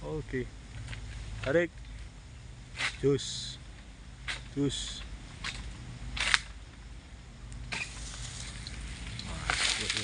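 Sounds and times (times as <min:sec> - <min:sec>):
palm fronds rustling: 0:00.6 - 0:06.8, 0:07.6 - 0:10.0
sickle scraping: 0:07.7 - 0:10.0.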